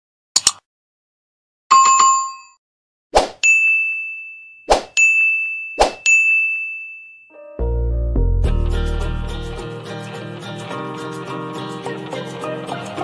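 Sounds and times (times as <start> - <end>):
sharp clicks: 0.4 - 0.6
music with deep bass: 7.6 - 10.4.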